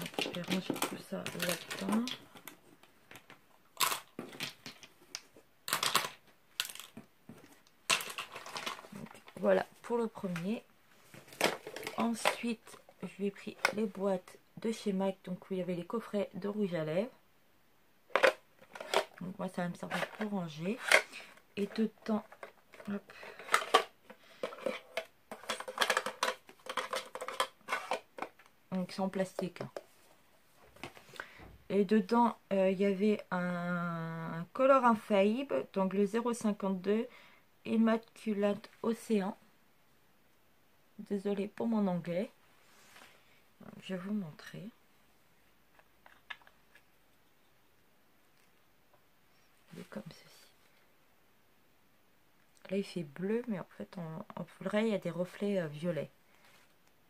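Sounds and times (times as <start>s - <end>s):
plastic packaging crinkling: 0.0s - 2.5s
cosmetic packaging rustling: 0.0s - 14.0s, 18.1s - 31.2s.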